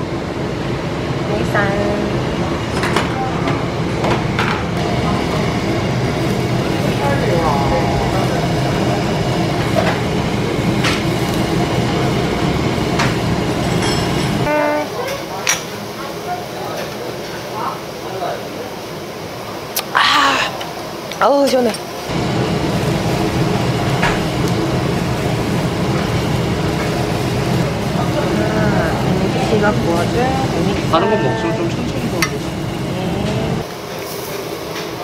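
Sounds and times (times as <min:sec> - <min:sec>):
meat sizzling on a grill: 0:04.8 - 0:14.4, 0:21.2 - 0:35.0.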